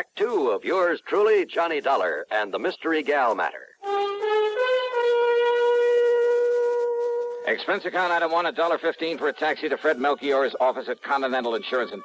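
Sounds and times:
wind instrument long note: 0:03.8 - 0:12.0.

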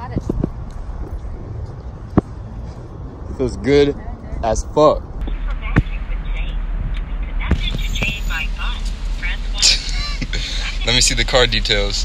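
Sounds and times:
car cabin rumble: 0:04.0 - 0:12.0
voices talking and laughing: 0:05.3 - 0:12.0.

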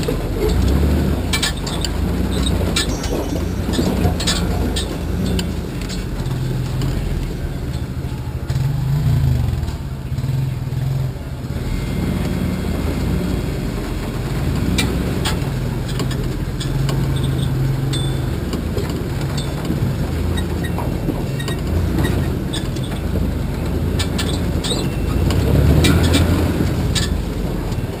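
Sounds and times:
body knocks and rattles: 0:00.0 - 0:08.2
truck engine at low revs: 0:00.0 - 0:28.0.

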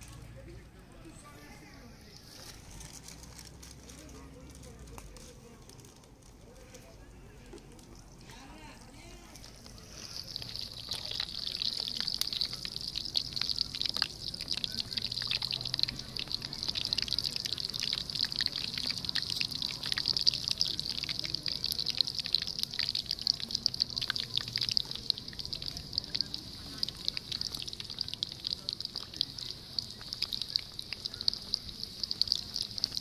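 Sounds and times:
dough deep-frying in oil: 0:01.4 - 0:33.0.

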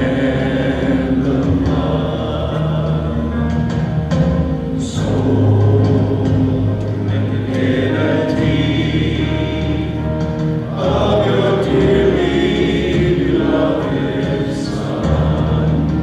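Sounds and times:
voices singing together: 0:00.0 - 0:16.0
worship band playing slow song: 0:00.0 - 0:16.0.

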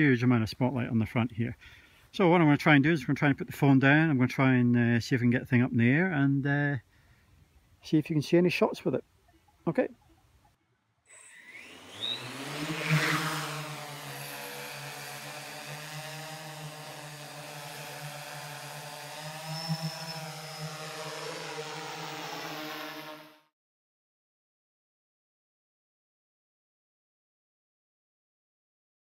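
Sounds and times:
drone motors and propellers whining: 0:11.1 - 0:23.5.

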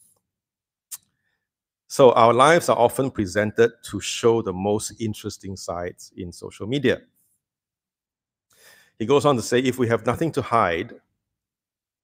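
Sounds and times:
breath into microphone: 0:08.5 - 0:09.0.

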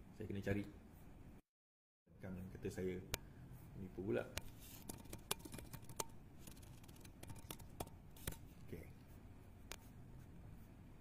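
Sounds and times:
computer mouse clicks: 0:04.9 - 0:08.4.

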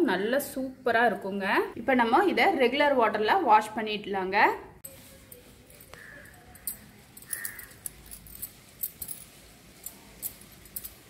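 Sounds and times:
bangles jingling: 0:04.9 - 0:11.0.

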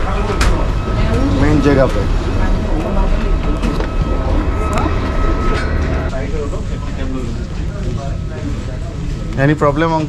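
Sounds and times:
faint high whine: 0:00.0 - 0:07.4
low machine rumble: 0:00.0 - 0:08.8
passengers' voices: 0:00.0 - 0:10.0.

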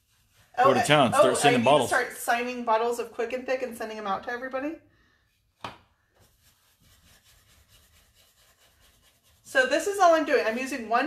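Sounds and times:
paintbrush scratching on wood: 0:00.0 - 0:01.4, 0:06.2 - 0:11.0.

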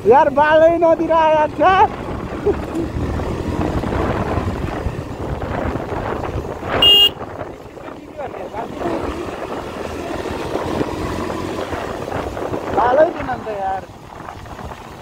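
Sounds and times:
vehicle engine and road noise: 0:00.0 - 0:15.0
short horn beep: 0:06.8 - 0:07.2.

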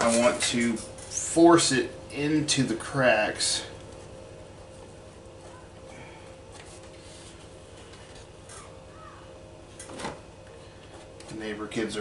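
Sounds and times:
steady room hum: 0:00.0 - 0:12.0
distant children shouting: 0:05.4 - 0:06.2, 0:08.5 - 0:09.6.

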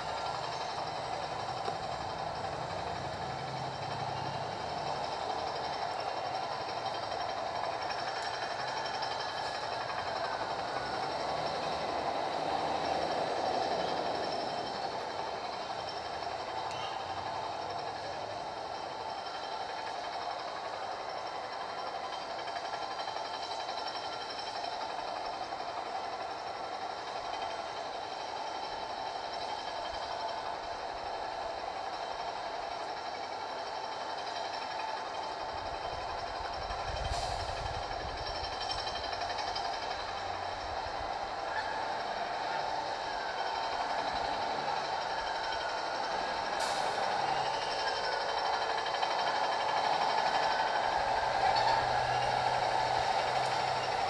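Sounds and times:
outdoor hum and hiss: 0:00.0 - 0:54.0.

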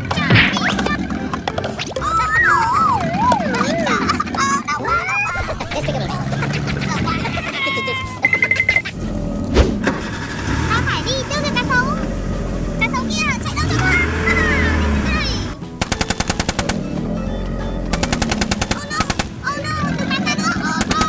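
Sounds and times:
squeaky gliding cartoon sounds: 0:00.0 - 0:15.6, 0:17.0 - 0:21.0
toy machine-gun bursts: 0:15.8 - 0:16.8, 0:17.9 - 0:19.4, 0:20.8 - 0:21.0.

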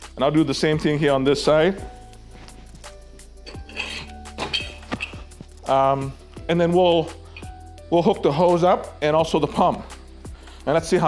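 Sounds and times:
quiet background music: 0:00.0 - 0:11.0
metal scrape: 0:02.4 - 0:05.4.

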